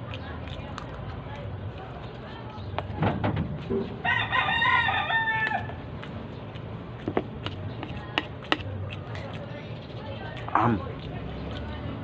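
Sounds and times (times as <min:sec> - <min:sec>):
rooster crowing: 0:04.0 - 0:05.8.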